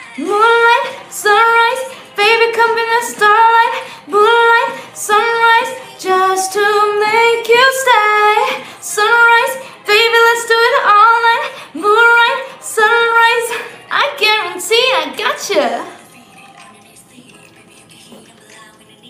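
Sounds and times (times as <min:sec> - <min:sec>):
woman singing in high voice: 0:00.0 - 0:19.0
singer breathing: 0:03.7 - 0:04.1, 0:08.5 - 0:08.9.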